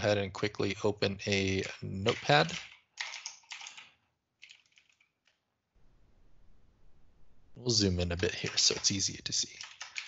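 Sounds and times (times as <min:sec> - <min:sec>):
keyboard typing: 0:01.6 - 0:05.4, 0:08.2 - 0:10.0.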